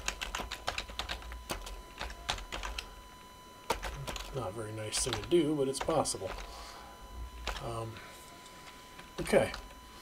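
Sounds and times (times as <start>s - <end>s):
computer keyboard typing: 0.0s - 2.9s, 3.7s - 6.5s, 7.4s - 7.7s.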